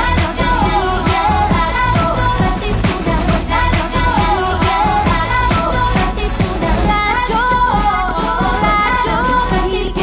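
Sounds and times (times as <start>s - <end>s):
upbeat pop song with singing: 0.0s - 10.0s.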